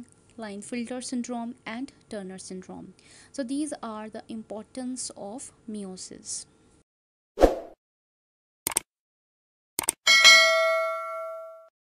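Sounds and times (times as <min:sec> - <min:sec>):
notification bell ringing: 0:10.1 - 0:11.7.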